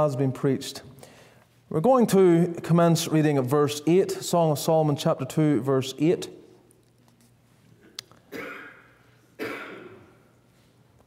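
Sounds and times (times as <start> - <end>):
person coughing: 8.3 - 10.3.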